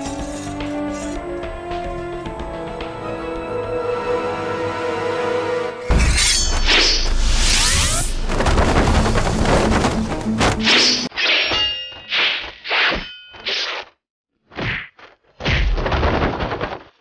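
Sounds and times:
tense drama music: 0.0s - 11.0s
fight impacts and crashing: 5.9s - 13.9s, 14.5s - 17.0s.

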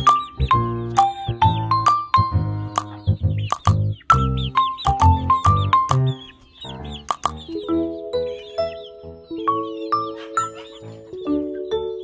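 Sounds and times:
background music with beat: 0.0s - 6.2s
chicks chirping: 0.0s - 12.0s.

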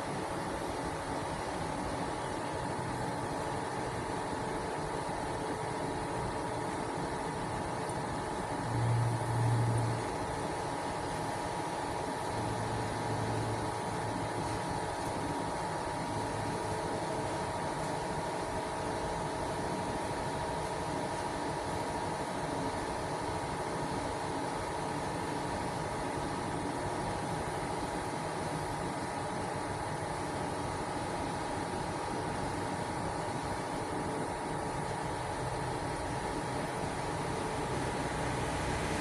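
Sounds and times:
cooling fan whirring: 0.0s - 39.0s
faint steady hum: 0.0s - 39.0s.

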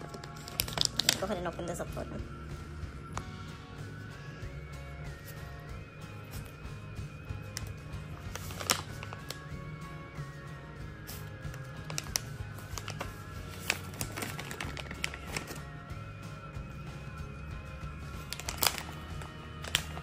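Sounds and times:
plastic pouch crackling: 0.0s - 1.4s, 7.6s - 9.5s, 11.1s - 15.6s, 18.2s - 20.0s
background music: 0.0s - 20.0s.

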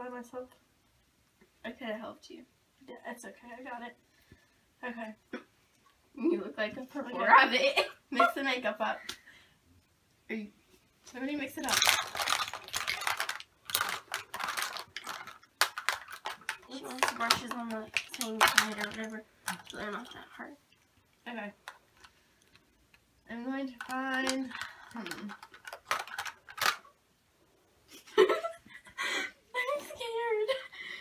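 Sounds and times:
plastic containers clicking together: 11.6s - 20.1s, 23.7s - 26.8s
makeup items clattering: 11.6s - 20.3s, 23.7s - 26.9s.

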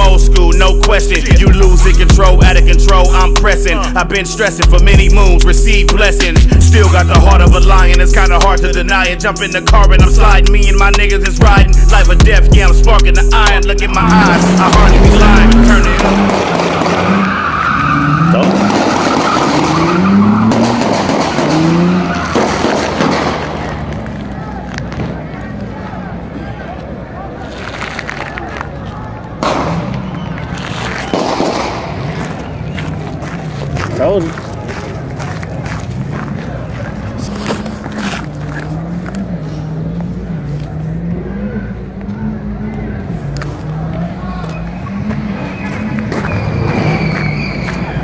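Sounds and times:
car engine revving: 0.0s - 26.2s, 29.3s - 48.0s
tyres squealing and skidding: 0.0s - 48.0s
car engine at high revs: 13.9s - 24.4s.

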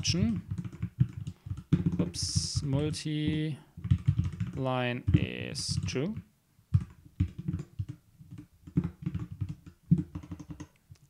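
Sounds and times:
keyboard typing: 0.0s - 11.0s.

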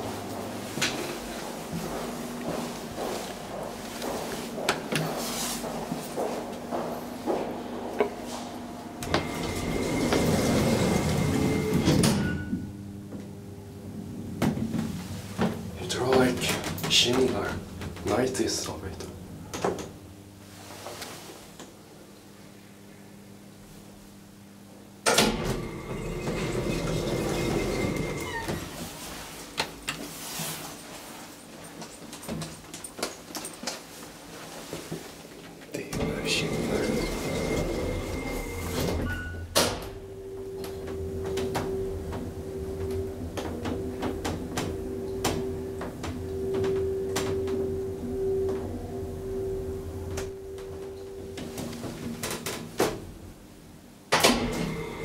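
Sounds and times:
elevator hum and whine: 0.0s - 55.0s
faint steady whine: 34.3s - 55.0s.

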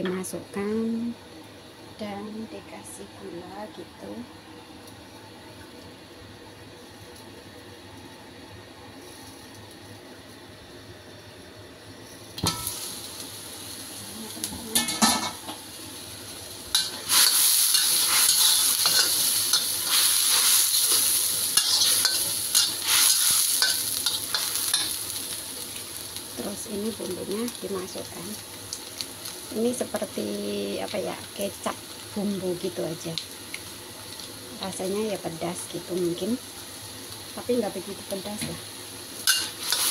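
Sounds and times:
meat sizzling and bubbling: 0.0s - 39.9s
meat hissing under lid: 15.5s - 26.4s, 38.7s - 39.9s
metal spatula scraping wok: 16.8s - 25.1s, 39.2s - 39.9s.

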